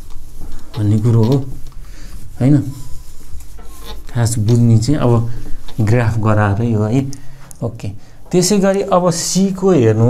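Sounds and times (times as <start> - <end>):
whiteboard being wiped: 0.0 - 7.4.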